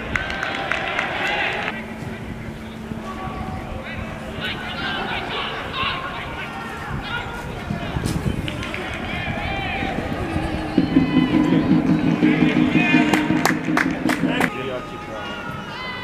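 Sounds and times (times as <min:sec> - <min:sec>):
low droning tone: 0:00.0 - 0:06.6, 0:09.3 - 0:15.8
players shouting: 0:00.0 - 0:16.0.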